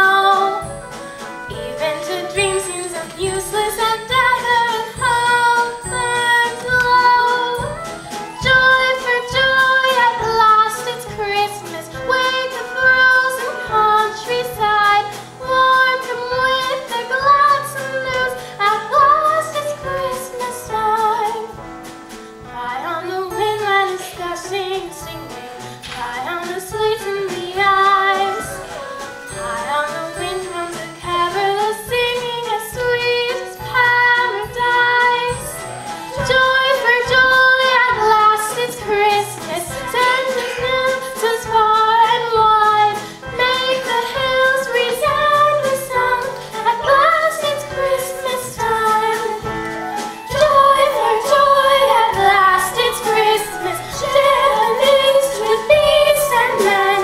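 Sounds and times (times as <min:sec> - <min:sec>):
instrumental accompaniment with beat: 0:00.0 - 0:57.0
children singing: 0:33.3 - 0:57.0.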